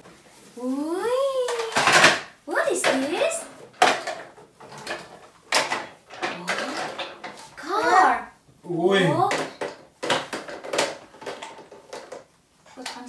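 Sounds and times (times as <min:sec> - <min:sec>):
voices: 0:00.6 - 0:03.6.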